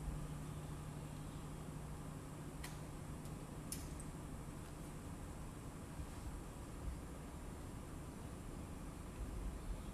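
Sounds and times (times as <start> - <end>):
steady low hum: 0.0 - 9.9
faint sharp clicks: 2.6 - 4.2.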